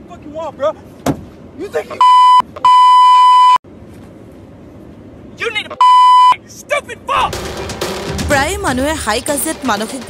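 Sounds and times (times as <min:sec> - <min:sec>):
censor bleep: 0:02.0 - 0:03.6, 0:05.8 - 0:06.4.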